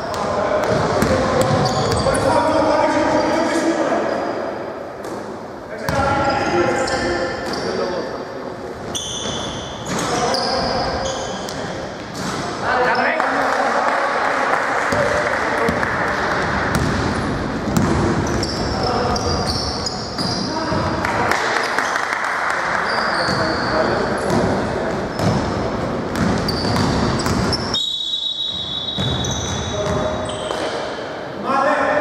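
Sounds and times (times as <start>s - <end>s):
sneakers squeaking: 0.0s - 13.2s, 15.0s - 21.0s, 22.8s - 31.0s
basketball bouncing: 0.1s - 2.0s, 14.9s - 18.6s, 24.3s - 27.7s, 29.0s - 30.2s.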